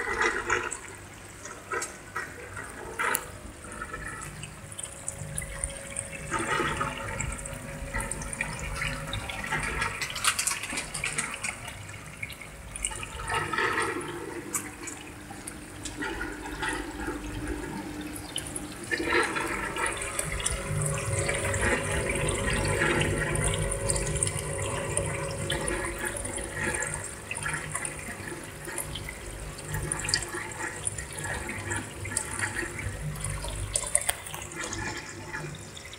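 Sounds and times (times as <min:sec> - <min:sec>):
water running and gurgling: 0:00.0 - 0:35.9.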